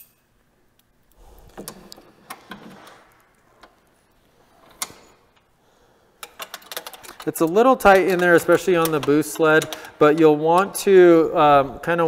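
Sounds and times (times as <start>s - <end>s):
wrench clicking on bolts: 6.2s - 10.8s.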